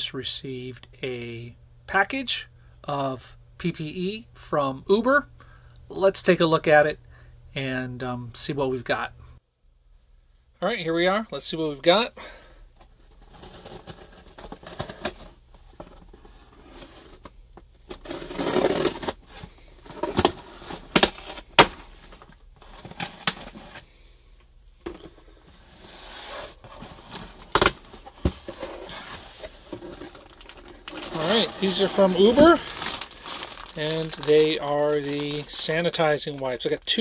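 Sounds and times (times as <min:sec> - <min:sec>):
tape and cardboard tearing: 0:17.9 - 0:19.4
plastic packaging crinkling: 0:26.2 - 0:37.0.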